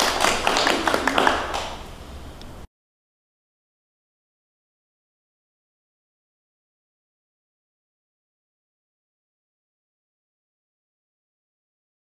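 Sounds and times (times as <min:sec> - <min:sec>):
group applauding: 0:00.0 - 0:02.0.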